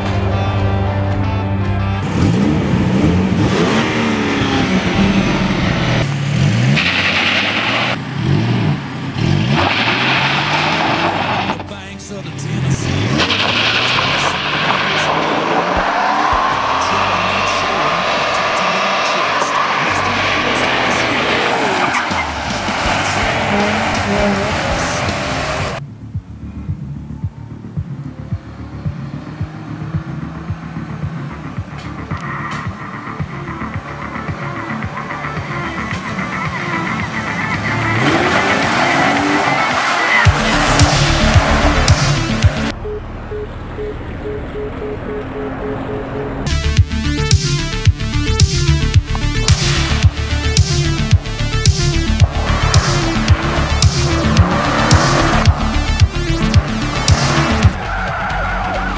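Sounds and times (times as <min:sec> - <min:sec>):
car engine revving: 0:00.0 - 0:58.9.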